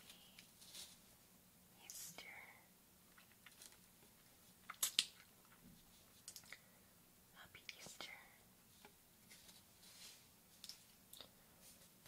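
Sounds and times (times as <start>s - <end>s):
faint whisper: 1.7s - 2.7s, 7.3s - 8.5s.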